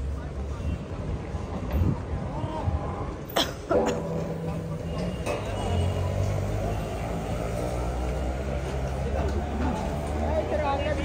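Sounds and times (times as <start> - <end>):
street noise: 0.0 - 11.0
vehicle engine rumbling: 0.0 - 11.0.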